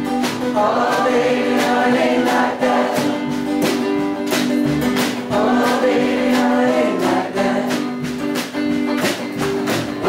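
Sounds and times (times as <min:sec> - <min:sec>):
acoustic guitar strumming: 0:00.0 - 0:10.0
live blues band playing: 0:00.0 - 0:10.0.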